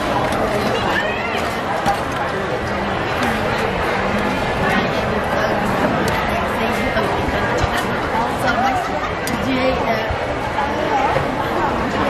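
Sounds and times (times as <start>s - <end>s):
busy market hubbub: 0.0s - 12.0s
people talking: 0.0s - 12.0s.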